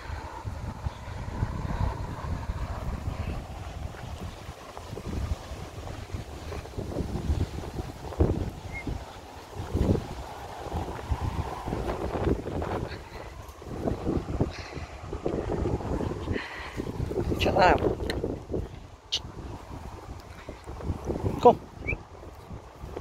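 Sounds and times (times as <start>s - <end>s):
wind buffeting microphone: 0.0s - 23.0s.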